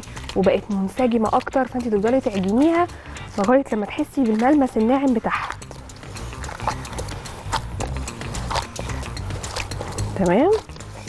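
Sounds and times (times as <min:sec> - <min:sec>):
dough kneaded in glass bowl: 0:00.0 - 0:11.0.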